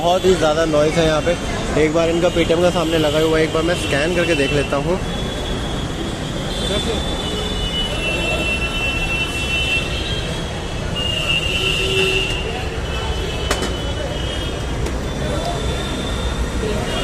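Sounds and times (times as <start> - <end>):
low traffic rumble: 0.0 - 17.0.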